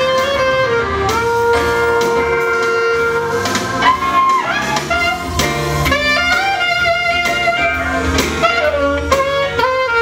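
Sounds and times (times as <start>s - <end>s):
saxophone note sliding up: 0.0s - 10.0s.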